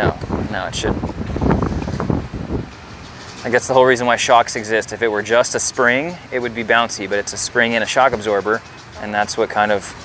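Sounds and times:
wind buffeting a microphone: 0.0 - 3.8.

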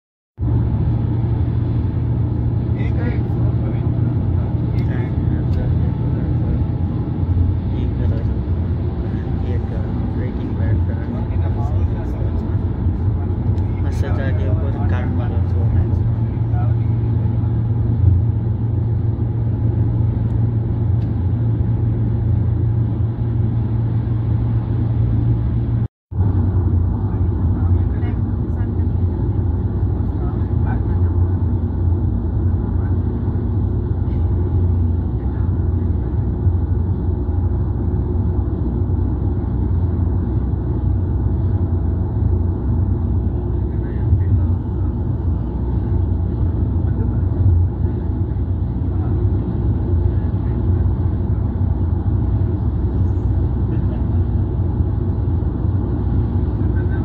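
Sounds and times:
car road noise at highway speed: 0.4 - 57.0.

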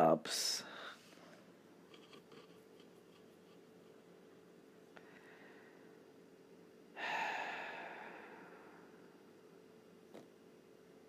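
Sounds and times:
breathy sigh: 6.9 - 9.0.

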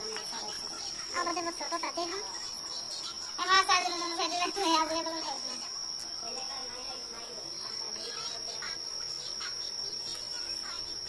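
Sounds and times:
cricket trill: 0.0 - 11.0.

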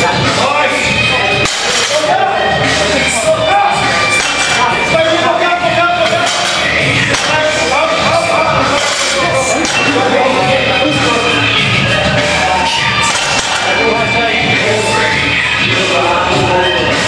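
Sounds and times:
loud background music: 0.0 - 17.0.

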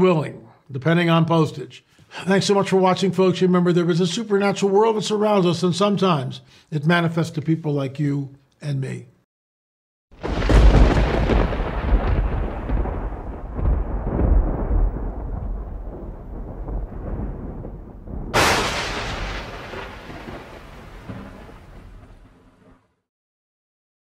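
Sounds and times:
sharp crack: 16.8 - 22.8.

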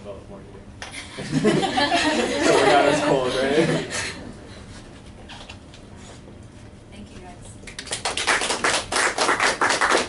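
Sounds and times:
audience applauding: 7.8 - 10.0.

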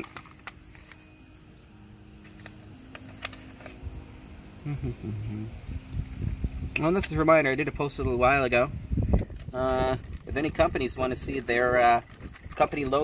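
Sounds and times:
high insect trill: 0.0 - 13.0
person laughing: 4.6 - 5.5.

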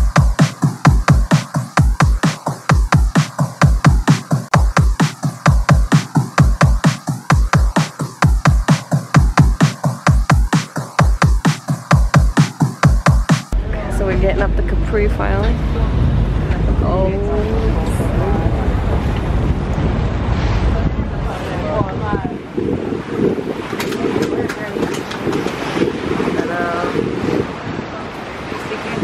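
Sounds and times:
sea rushing: 0.0 - 29.0
ferry engine droning: 13.5 - 21.7
wind buffeting microphone: 13.5 - 29.0
indistinct voices: 13.6 - 19.1.

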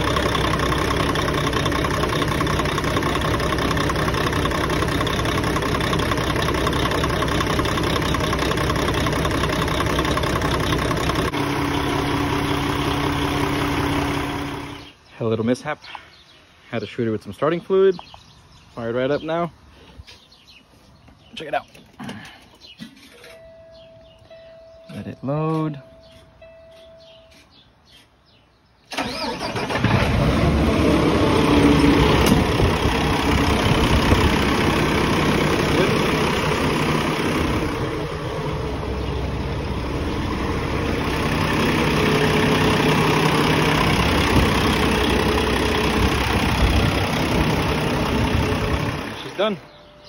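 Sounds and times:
diesel engine running: 0.0 - 15.0, 28.9 - 50.0.

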